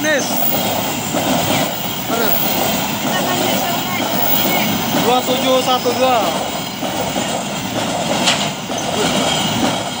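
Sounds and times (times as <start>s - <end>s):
faint high wheel squeal: 0.0s - 6.4s
train wheels rolling on rail: 0.0s - 10.0s.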